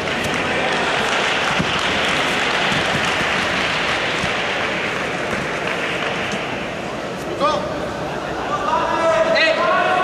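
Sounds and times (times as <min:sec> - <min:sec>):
spectators applauding: 0:00.0 - 0:06.7.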